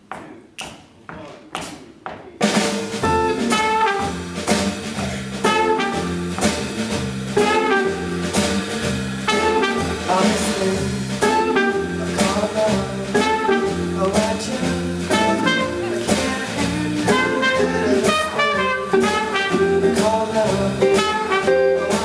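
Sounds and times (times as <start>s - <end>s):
jazz band playing swing: 2.4s - 22.0s.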